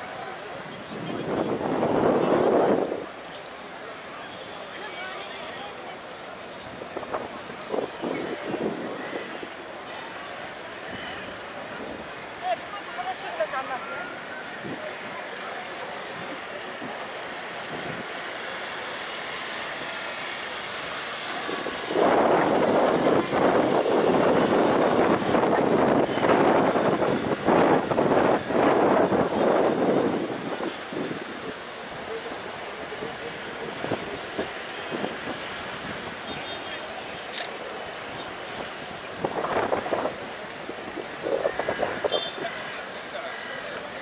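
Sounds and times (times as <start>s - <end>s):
traffic hum: 0.0s - 44.0s
loud rough rushing noise: 16.0s - 43.5s.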